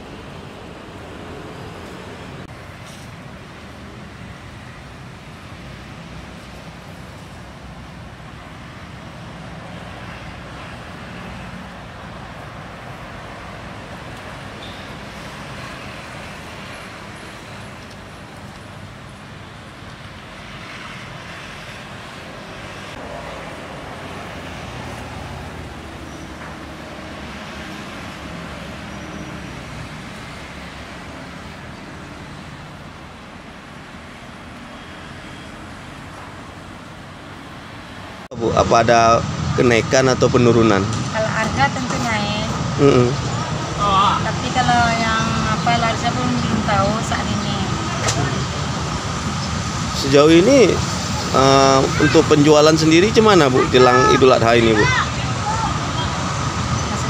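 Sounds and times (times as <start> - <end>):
cars and motorcycles passing: 0.0 - 57.0
road traffic: 0.0 - 57.0.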